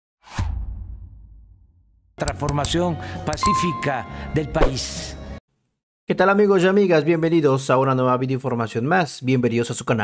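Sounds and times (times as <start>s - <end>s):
low rumble boom: 0.3s - 2.1s.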